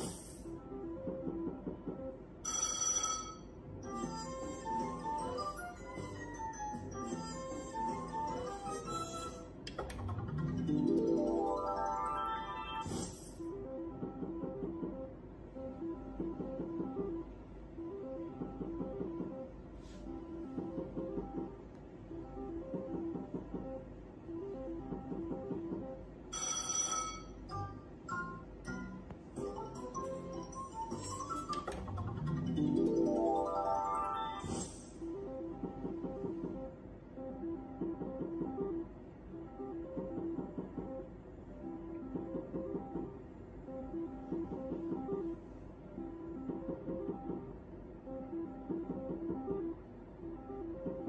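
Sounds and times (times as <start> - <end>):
slot machine ringing chime: 2.4 - 9.5, 10.2 - 12.9, 26.3 - 34.7
slot machine melodic jingle: 2.4 - 17.2, 22.2 - 36.6.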